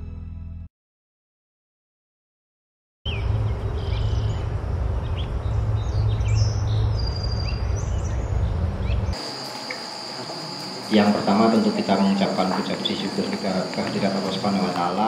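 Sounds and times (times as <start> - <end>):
steady low rumble: 3.1 - 9.2
birds chirping: 3.1 - 15.0
high insect drone: 9.1 - 15.0.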